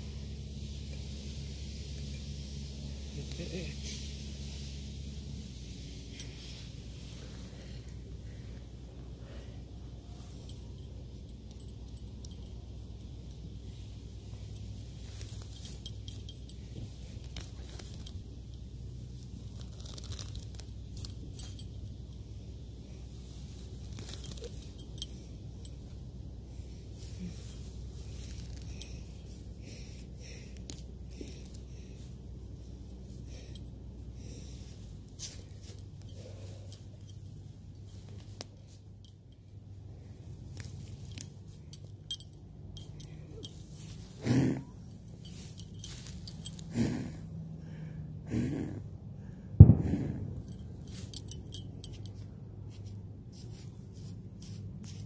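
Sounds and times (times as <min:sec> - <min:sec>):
weeds pulled up by hand: 0:00.0 - 0:48.9, 0:49.6 - 0:55.0
low steady hum: 0:00.0 - 0:55.0.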